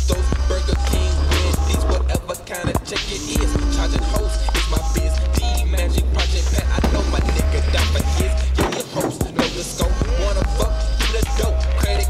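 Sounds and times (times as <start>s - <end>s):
hip hop backing track: 0.0s - 12.0s
skateboard rolling on asphalt: 0.2s - 8.2s.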